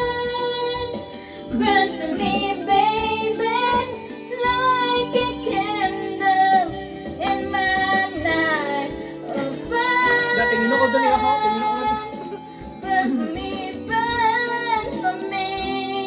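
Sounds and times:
karaoke backing track: 0:00.0 - 0:16.0
woman singing karaoke: 0:00.0 - 0:16.0.

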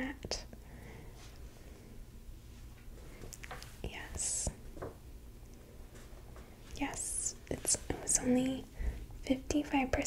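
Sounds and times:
woman whispering: 0:03.8 - 0:04.6, 0:06.8 - 0:08.7.

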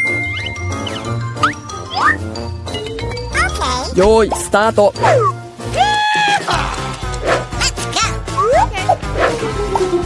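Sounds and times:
light jingly background music: 0:00.0 - 0:08.4.

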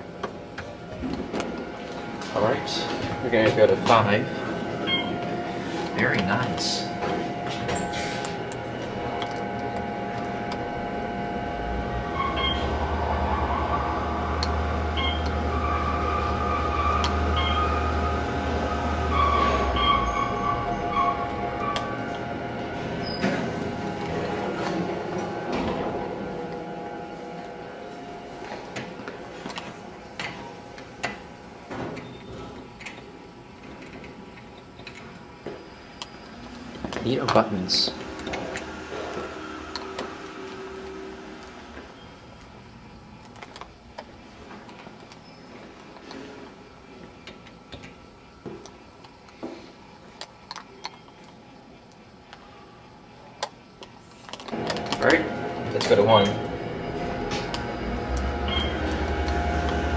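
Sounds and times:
elevator machine hum and whine: 0:00.0 - 0:59.9
low drone: 0:01.0 - 0:31.0, 0:35.7 - 0:43.6, 0:54.5 - 0:59.9.

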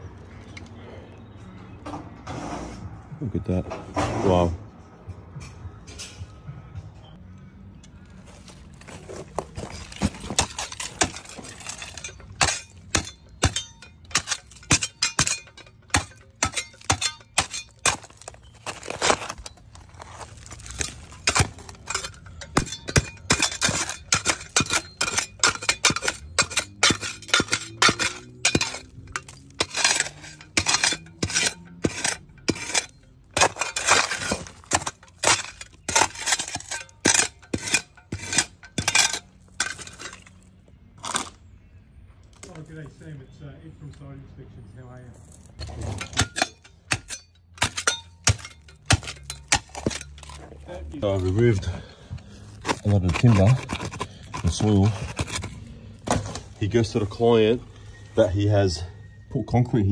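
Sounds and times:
spade digging into soil and rubble: 0:08.2 - 0:41.5, 0:45.1 - 0:58.4
spade clinking on stones: 0:08.3 - 0:41.4, 0:45.2 - 0:57.9.

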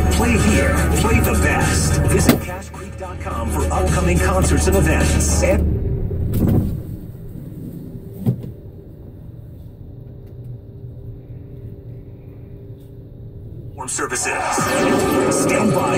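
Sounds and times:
car engine idling: 0:00.0 - 0:15.9.

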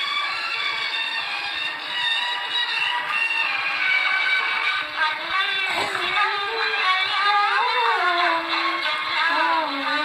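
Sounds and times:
woman singing a slow song: 0:05.0 - 0:10.0.

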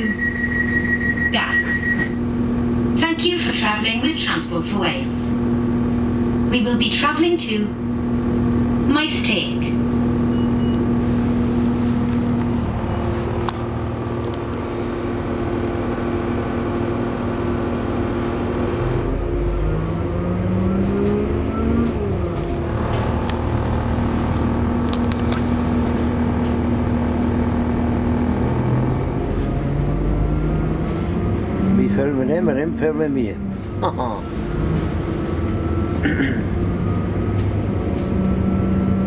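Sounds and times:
train engine drone: 0:00.0 - 0:39.0
train transmission whine: 0:00.0 - 0:39.0.

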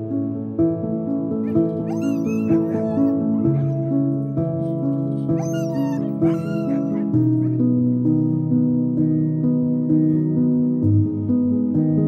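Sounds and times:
plucked background music: 0:00.0 - 0:12.0
dog whimpering and crying: 0:01.4 - 0:07.6.

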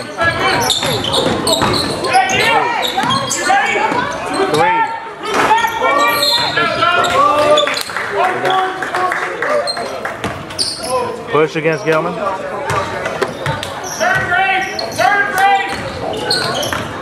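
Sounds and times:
sneakers squeaking: 0:00.0 - 0:08.0, 0:09.7 - 0:12.0, 0:12.6 - 0:17.0
players' voices: 0:00.0 - 0:17.0.

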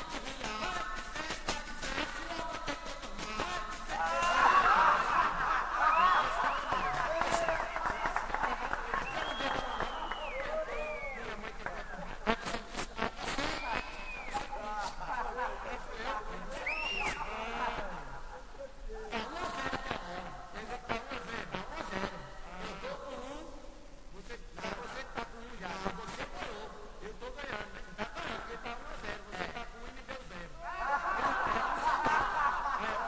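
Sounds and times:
man singing fast chant: 0:00.0 - 0:12.9, 0:13.6 - 0:23.4
audience laughing: 0:03.9 - 0:11.2, 0:30.7 - 0:33.0.

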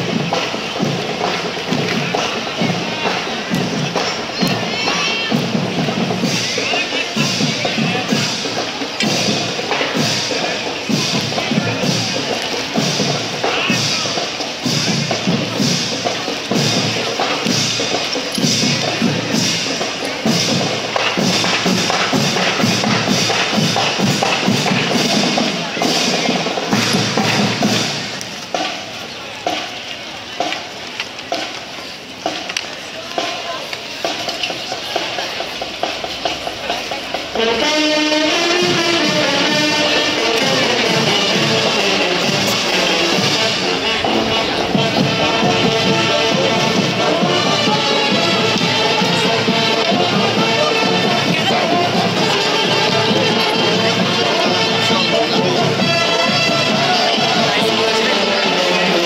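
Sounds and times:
crowd voices: 0:00.0 - 0:59.0
marching drums parade beat: 0:00.0 - 0:59.0.

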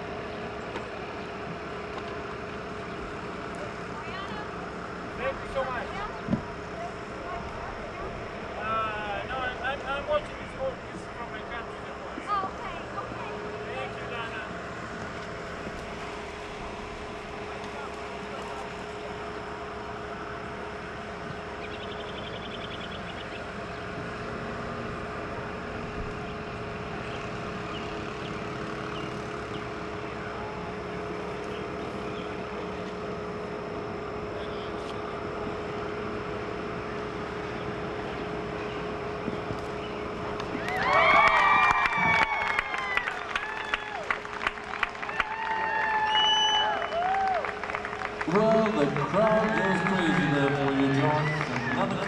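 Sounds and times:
crowd hum: 0:00.0 - 0:52.0
crowd cheering and whistling: 0:40.4 - 0:52.0.

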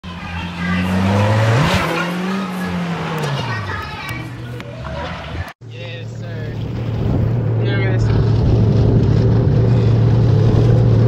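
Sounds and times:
car engine running hard: 0:00.0 - 0:11.0.

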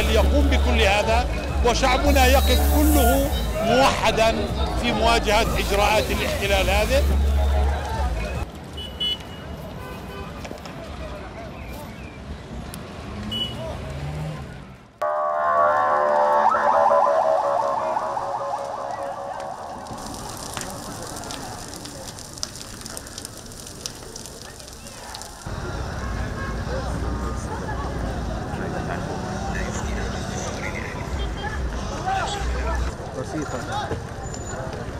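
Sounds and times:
large fire crackling: 0:00.0 - 0:09.7, 0:10.3 - 0:11.3, 0:16.5 - 0:34.9
street and crowd noise: 0:00.0 - 0:34.9
electronic alarm pulsing tone: 0:15.0 - 0:20.0.

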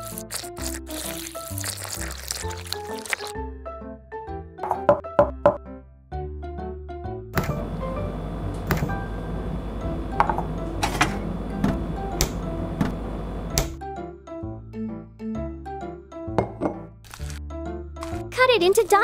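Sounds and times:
light background music: 0:00.0 - 0:19.0
steady noise: 0:07.6 - 0:13.6.

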